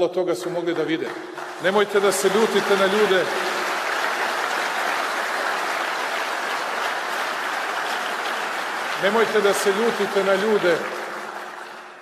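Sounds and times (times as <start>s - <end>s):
audience applause: 0.8s - 12.0s.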